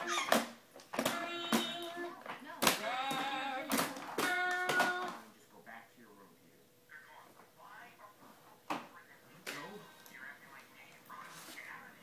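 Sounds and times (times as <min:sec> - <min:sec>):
baby squealing: 0:00.0 - 0:00.4
hands slapping plastic toy: 0:00.0 - 0:05.2.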